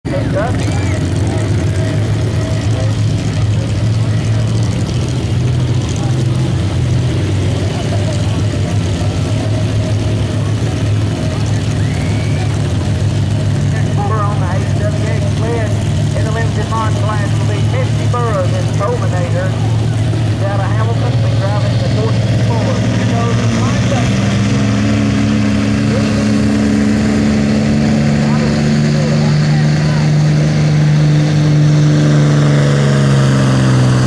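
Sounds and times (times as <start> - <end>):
voices: 0.0 - 4.9, 5.6 - 24.4, 25.7 - 30.9
truck engines idling: 0.0 - 34.0.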